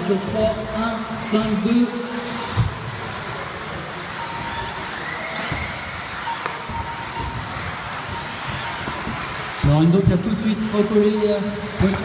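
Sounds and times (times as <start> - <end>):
rc car motor whine: 0.2 - 12.0
thin rising whine: 2.0 - 12.0.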